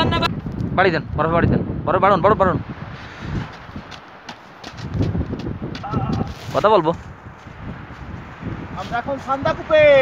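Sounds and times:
icy snow crunching: 3.0 - 9.4.

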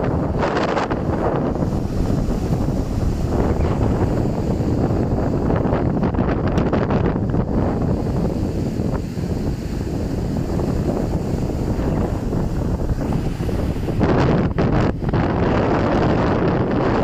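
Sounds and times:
surf breaking on shore: 0.0 - 17.0
wind buffeting microphone: 0.0 - 17.0.

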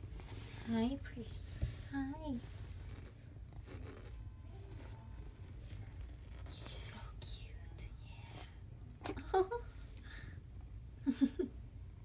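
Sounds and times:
low steady hum: 0.0 - 12.0
person whispering: 6.4 - 8.7.

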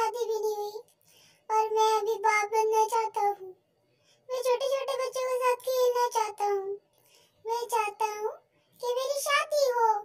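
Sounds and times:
child-like voice singing: 0.0 - 0.9, 1.5 - 3.6, 4.3 - 6.8, 7.4 - 10.0.

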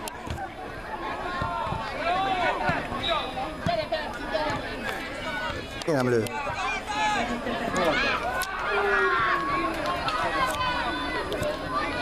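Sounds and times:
people shouting: 6.4 - 12.0.

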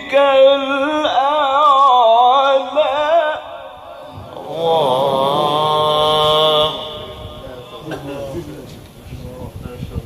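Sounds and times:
man reciting melodically: 0.0 - 8.8.

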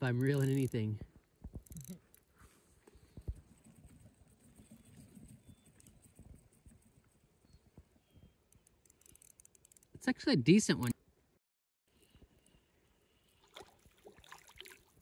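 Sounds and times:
fishing reel clicking: 0.1 - 0.8, 8.5 - 9.9.

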